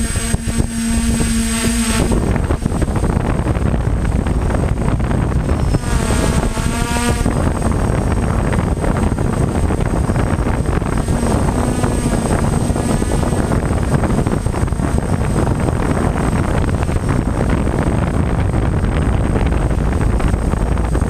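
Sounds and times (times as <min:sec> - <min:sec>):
drone motors whining: 0:00.0 - 0:21.0
wind buffeting: 0:00.0 - 0:21.0.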